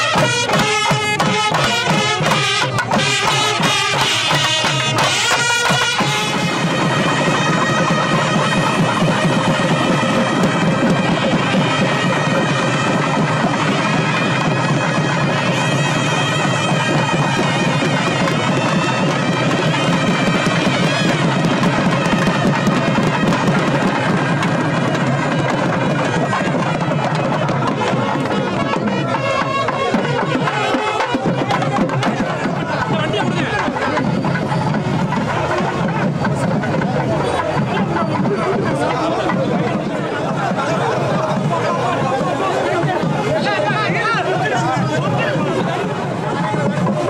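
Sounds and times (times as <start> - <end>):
double-reed pipes playing: 0.0 - 47.0.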